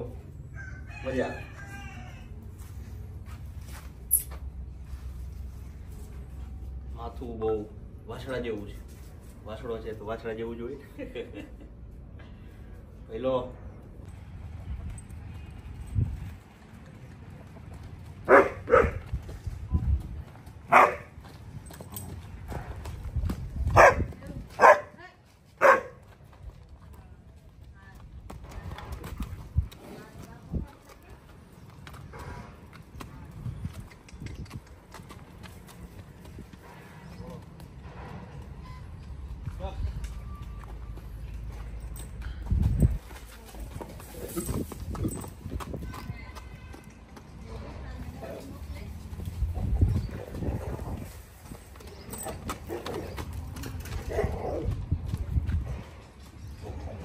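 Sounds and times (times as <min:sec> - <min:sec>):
rooster crowing: 0:00.5 - 0:02.4
horse hooves on dirt: 0:00.6 - 0:10.0, 0:13.7 - 0:57.0
dog barking: 0:18.3 - 0:19.0, 0:20.7 - 0:21.1, 0:23.8 - 0:24.9, 0:25.6 - 0:26.0.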